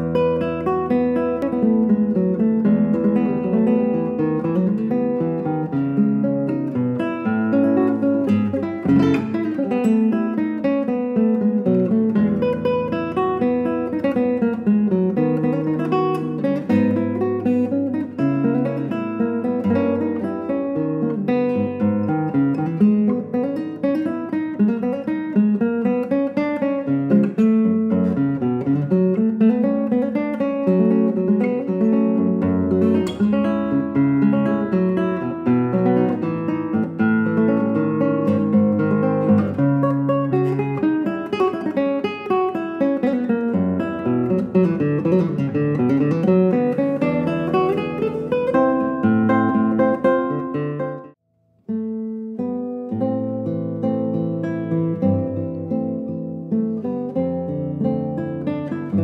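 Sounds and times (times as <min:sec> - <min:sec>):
classical guitar playing: 0:00.0 - 0:59.0.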